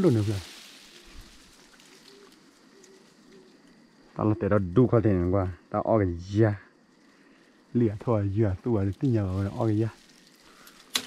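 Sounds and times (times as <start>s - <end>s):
leaves and twigs rustling: 0.0s - 5.0s, 6.7s - 11.0s
dove cooing: 0.9s - 4.8s.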